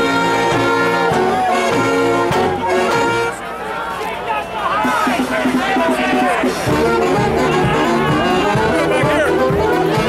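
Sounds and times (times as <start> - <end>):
saxophone melody: 0.0 - 3.5, 6.2 - 10.0
string band playing live: 0.0 - 4.0, 4.9 - 10.0
crowd chatter: 0.0 - 10.0.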